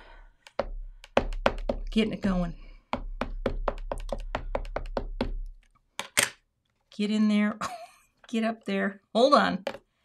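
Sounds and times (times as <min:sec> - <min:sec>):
ink pad tapping on stamp: 0:00.4 - 0:02.0, 0:02.9 - 0:05.4.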